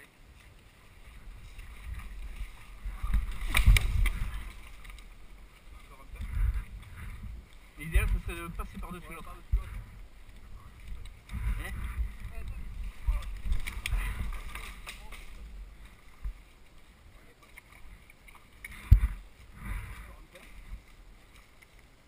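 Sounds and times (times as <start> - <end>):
low rumbling on microphone: 0.3 - 21.3.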